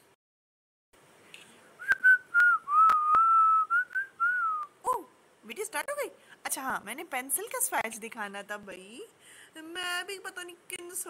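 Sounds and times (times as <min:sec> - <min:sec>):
woman whistling: 0:01.8 - 0:04.7.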